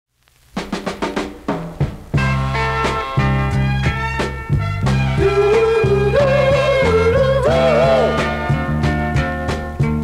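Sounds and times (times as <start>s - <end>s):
quick drum fill: 0.6s - 3.2s.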